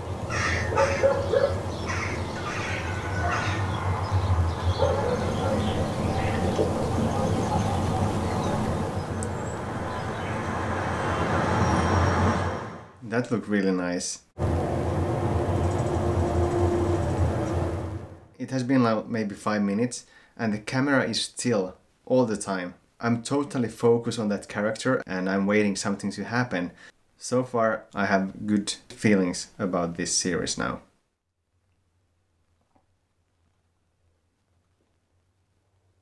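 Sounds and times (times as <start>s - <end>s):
birds calling: 0.0s - 12.4s.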